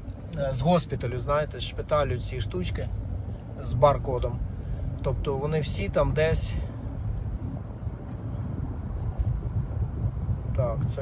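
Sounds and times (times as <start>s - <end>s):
car cabin road rumble: 0.0s - 11.0s.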